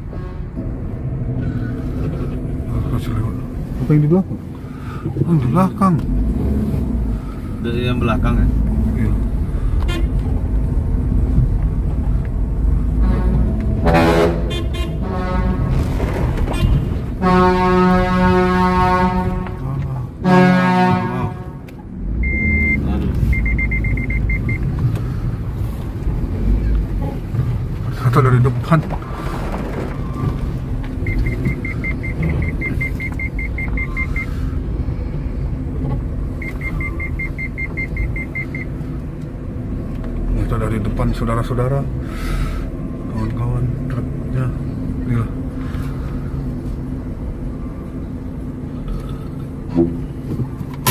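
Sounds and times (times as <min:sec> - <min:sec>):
deep truck horn blasts: 0:00.0 - 0:01.0, 0:09.8 - 0:10.2, 0:12.8 - 0:22.9
engine rumble: 0:00.0 - 0:50.9
reverse warning beeps: 0:22.2 - 0:24.7, 0:31.0 - 0:34.4, 0:36.4 - 0:38.8.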